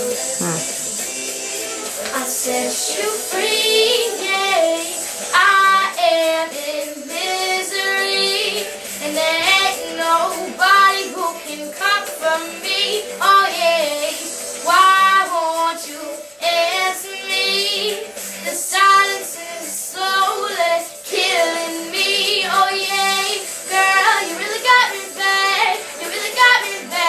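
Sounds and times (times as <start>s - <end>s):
girl singing pop song: 0.0s - 27.0s.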